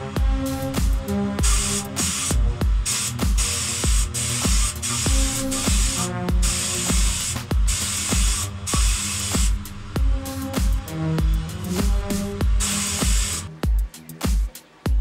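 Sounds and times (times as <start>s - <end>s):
background music with beat: 0.0s - 15.0s
spray gun hissing: 0.5s - 13.6s.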